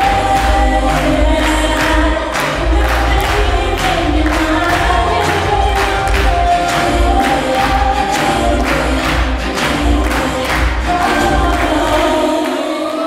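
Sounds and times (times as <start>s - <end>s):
dance music with steady beat: 0.0s - 12.9s.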